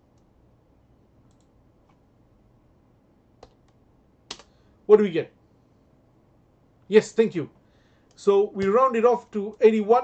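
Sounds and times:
computer keyboard keystrokes: 3.4 - 4.5.

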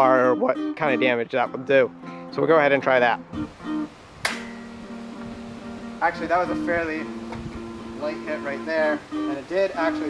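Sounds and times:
acoustic guitar music: 0.0 - 10.0
sword blade chopping wood: 4.2 - 4.5.

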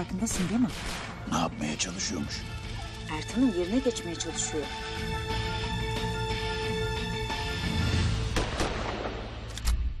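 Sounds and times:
trailer music: 0.0 - 10.0
gunshots: 0.3 - 1.4, 8.3 - 9.5.

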